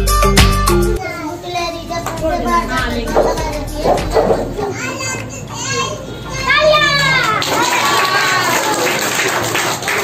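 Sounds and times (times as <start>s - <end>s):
children talking and calling out: 1.0s - 8.6s
high-pitched shout: 6.4s - 8.8s.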